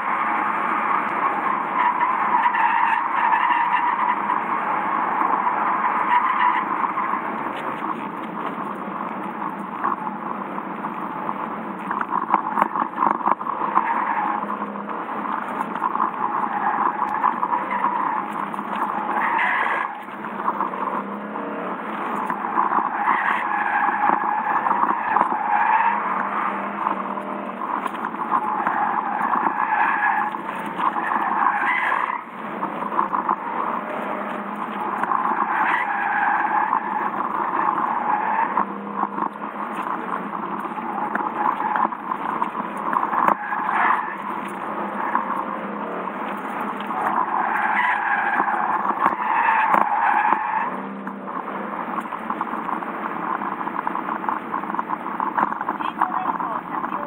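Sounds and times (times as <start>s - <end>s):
car engine noise: 0.0s - 57.0s
car tyres squealing: 0.0s - 57.0s.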